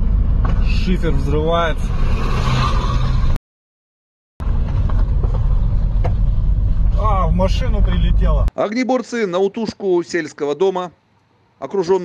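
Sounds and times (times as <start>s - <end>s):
engine and road rumble: 0.0s - 3.4s, 4.4s - 8.5s.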